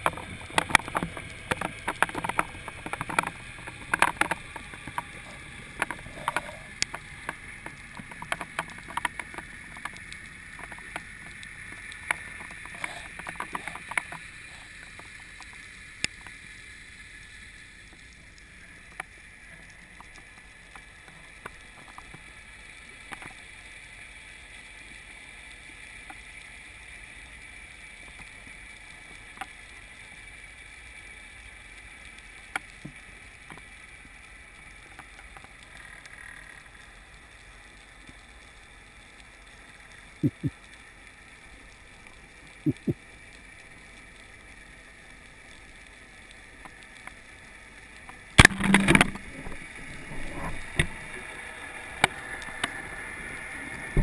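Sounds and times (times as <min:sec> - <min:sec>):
underwater clicks and knocks: 0:00.0 - 0:14.3, 0:48.4 - 0:51.0
muffled underwater hiss: 0:00.0 - 0:54.0.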